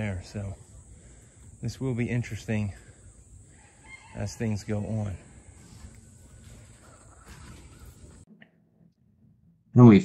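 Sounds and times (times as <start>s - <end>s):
faint outdoor hiss: 0.0s - 8.3s.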